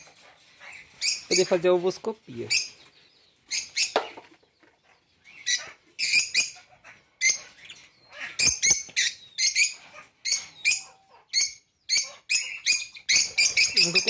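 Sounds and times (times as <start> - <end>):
lovebirds chirping: 0.0 - 14.0.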